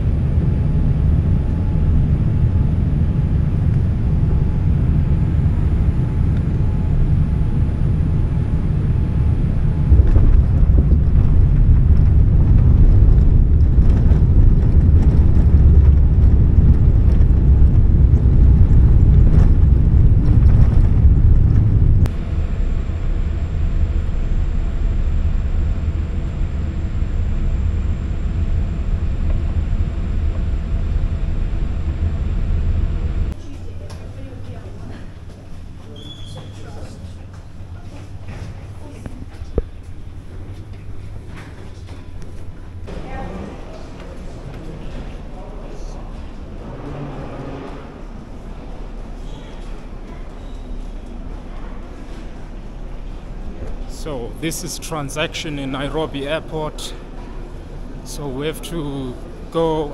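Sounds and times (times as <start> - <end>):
jet engine cabin rumble: 0.0 - 59.9.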